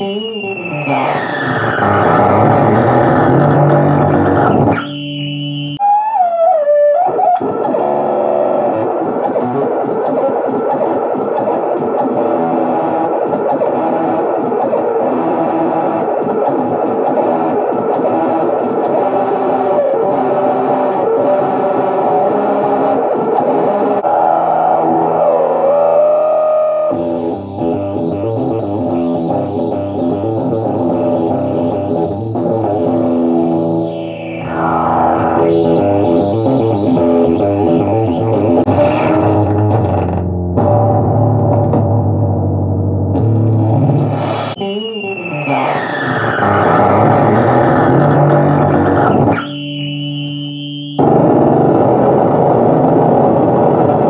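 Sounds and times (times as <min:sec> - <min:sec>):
electric guitar fuzz distortion: 0:00.0 - 0:54.0.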